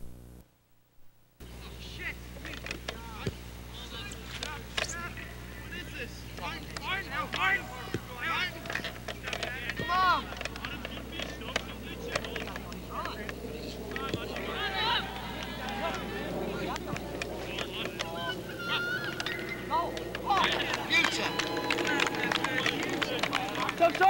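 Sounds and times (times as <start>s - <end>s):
spectators shouting and cheering: 6.8s - 24.0s.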